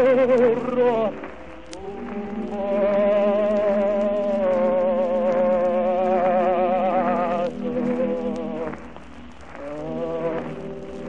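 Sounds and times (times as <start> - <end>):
operatic tenor singing: 0.0 - 11.0
record surface hiss: 0.0 - 11.0.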